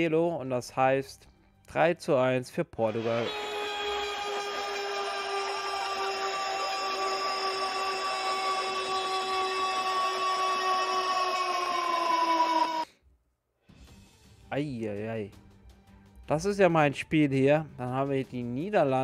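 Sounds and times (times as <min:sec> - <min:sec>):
long held tone: 0:03.1 - 0:12.9.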